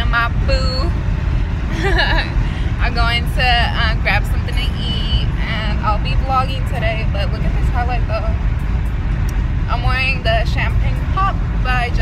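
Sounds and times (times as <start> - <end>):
woman speaking: 0.0 - 0.9, 1.8 - 8.4, 9.7 - 12.0
car cabin rumble: 0.0 - 12.0
woman laughing: 1.7 - 2.6.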